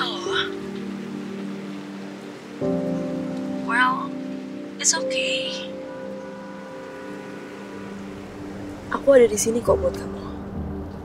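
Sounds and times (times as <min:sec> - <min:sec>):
soft film score chord: 0:00.0 - 0:11.0.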